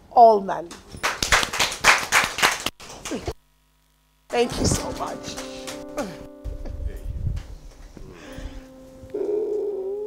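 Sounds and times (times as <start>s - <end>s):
keyboard pad chord: 4.3s - 10.0s
wavering keyboard note: 4.3s - 10.0s.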